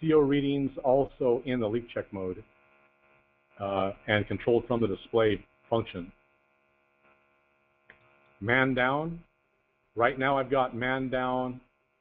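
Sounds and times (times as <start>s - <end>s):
faint electrical mains hum: 0.0s - 12.0s
person speaking: 3.6s - 6.1s, 8.4s - 9.2s, 10.0s - 11.6s.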